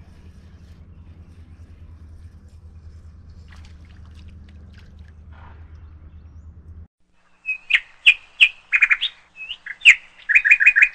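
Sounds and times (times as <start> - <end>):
low steady hum: 0.0 - 10.7
bird chirps and trills: 7.2 - 10.9.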